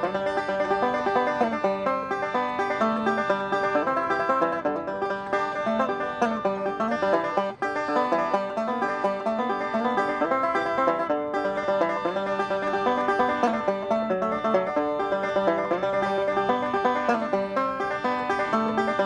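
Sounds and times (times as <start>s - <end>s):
banjo picking: 0.0s - 19.0s.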